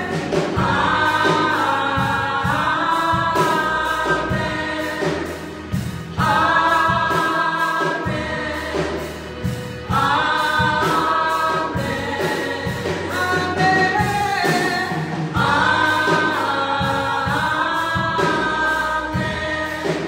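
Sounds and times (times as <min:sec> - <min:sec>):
drums: 0:00.0 - 0:20.0
women singing in harmony: 0:00.0 - 0:20.0.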